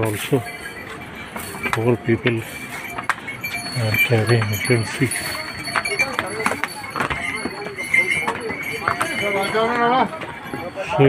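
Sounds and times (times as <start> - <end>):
horse hooves on stone: 0.0 - 11.0
people talking: 0.0 - 11.0.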